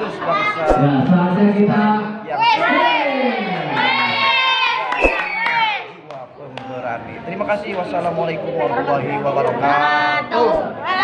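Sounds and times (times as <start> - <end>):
children shouting and cheering: 2.4 - 5.9.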